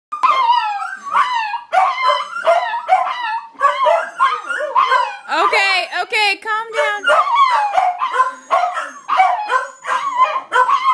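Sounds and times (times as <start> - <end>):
dog howling and yipping: 0.2 - 5.4, 6.8 - 10.9.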